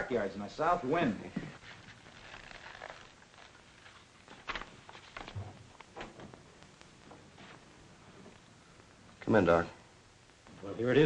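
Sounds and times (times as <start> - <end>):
wallet rustling: 1.4 - 6.0.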